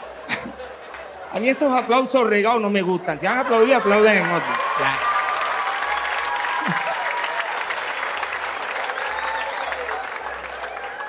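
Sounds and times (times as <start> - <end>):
audience applauding: 3.3 - 11.0.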